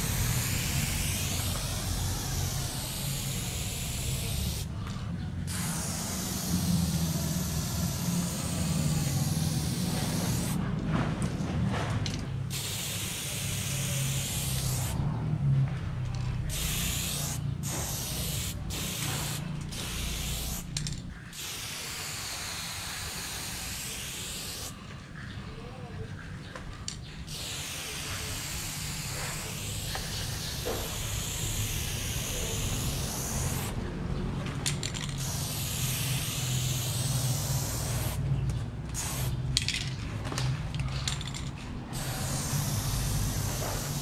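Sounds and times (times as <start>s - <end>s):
spray paint can hissing: 0.0s - 4.7s, 5.4s - 10.6s, 12.4s - 15.0s, 16.4s - 24.8s, 27.2s - 33.8s, 34.7s - 38.2s, 38.9s - 39.8s, 41.1s - 44.0s.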